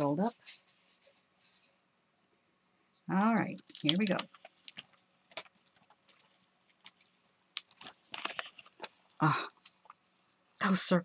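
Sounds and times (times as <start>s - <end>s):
paper crackling as peeled off: 3.6s - 10.0s.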